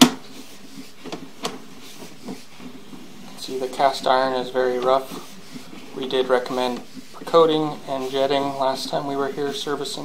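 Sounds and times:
cable rubbing: 0:00.2 - 0:10.0.

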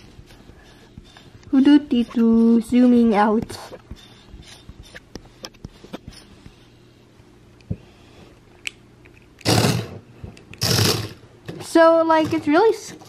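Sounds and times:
toy robot motor whirring: 0:10.6 - 0:11.2.

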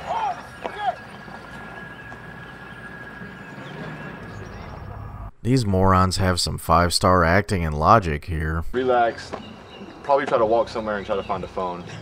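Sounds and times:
truck engine and tyres rumbling: 0:00.0 - 0:05.4.

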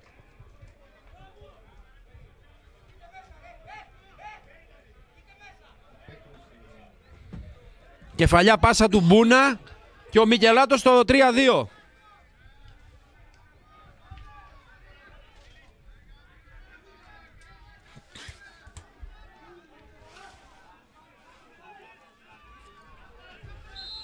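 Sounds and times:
distant shouting and chatter: 0:00.0 - 0:24.0.

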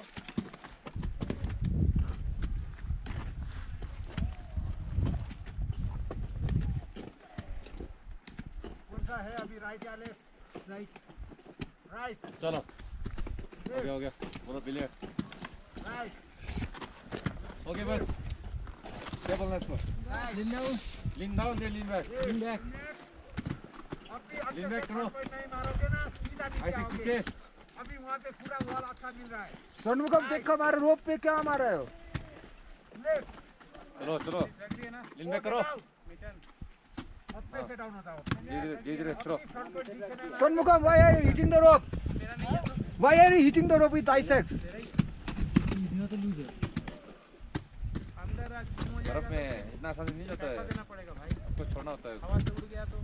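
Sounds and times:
wind rumble on microphone: 0:00.9 - 0:09.3, 0:16.4 - 0:22.8, 0:25.4 - 0:27.1, 0:40.6 - 0:46.7, 0:47.4 - 0:53.0
ice axes striking ice: 0:21.6 - 0:35.1.

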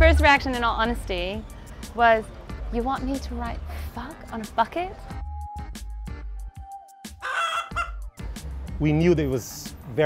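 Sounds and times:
soft background music: 0:00.0 - 0:10.0
chicken squawk: 0:07.2 - 0:08.1.

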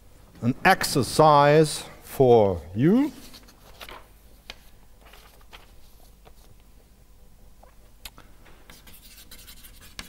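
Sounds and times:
chalk scratching on blackboard: 0:08.7 - 0:10.0
chalk tapping on blackboard: 0:08.7 - 0:10.0.

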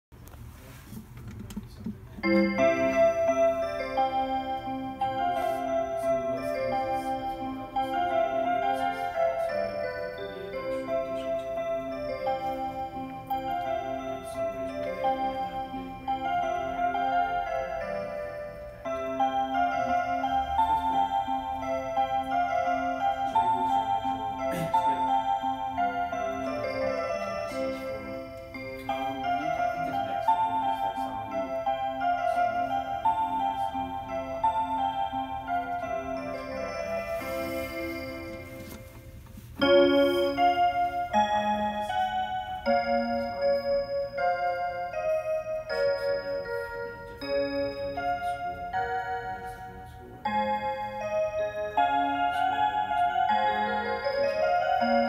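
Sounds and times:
clock chime melody: 0:02.2 - 0:55.0.

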